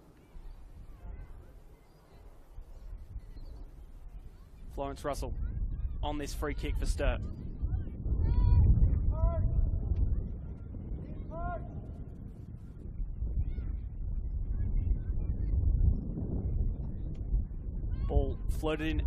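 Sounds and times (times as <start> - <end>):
steady low rumble: 2.4 - 19.0.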